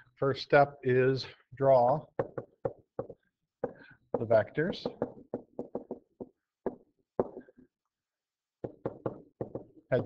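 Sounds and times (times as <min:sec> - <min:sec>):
pen tapping on writing surface: 0:02.2 - 0:07.5, 0:08.6 - 0:09.7.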